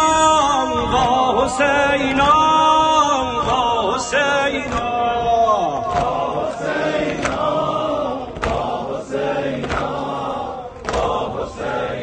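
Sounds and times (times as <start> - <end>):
man chanting through loudspeaker: 0.0 - 7.0.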